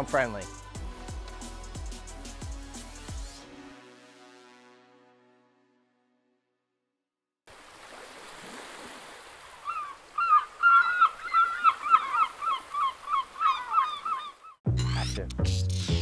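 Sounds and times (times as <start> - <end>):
music: 0.0 - 6.9, 14.7 - 16.0
bird honking: 9.6 - 15.1.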